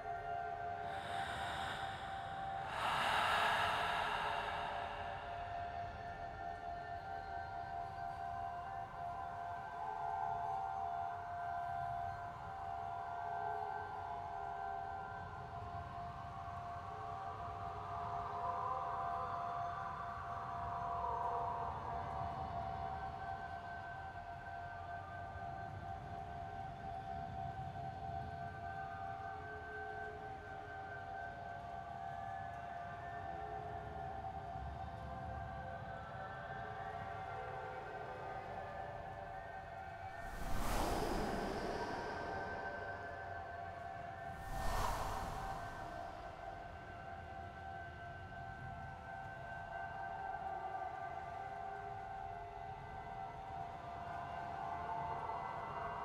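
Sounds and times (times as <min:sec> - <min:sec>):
eerie ambient drone: 0:00.6 - 0:09.9, 0:39.8 - 0:46.9.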